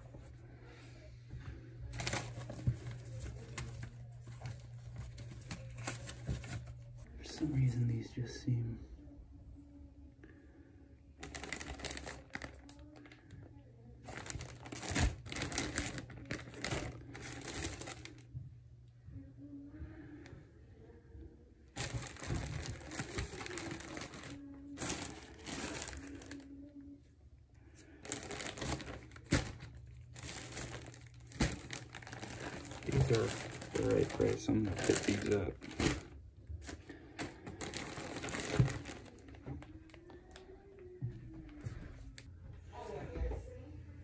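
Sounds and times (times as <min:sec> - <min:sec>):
plastic bags crinkling: 0:01.8 - 0:07.8, 0:11.2 - 0:13.4, 0:14.0 - 0:18.3, 0:21.7 - 0:26.6, 0:27.8 - 0:40.8.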